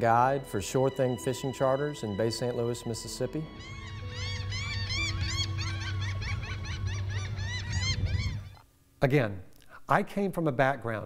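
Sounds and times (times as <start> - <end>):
gulls calling: 0.9 - 8.6.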